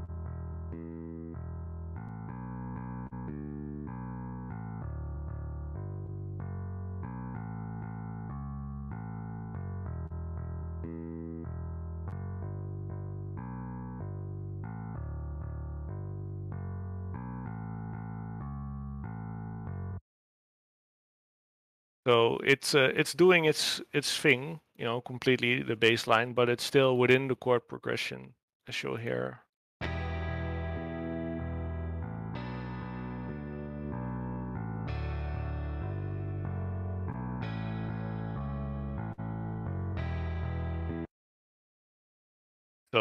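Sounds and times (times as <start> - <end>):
sampled electric bass line: 0.0 - 20.0, 29.8 - 41.1.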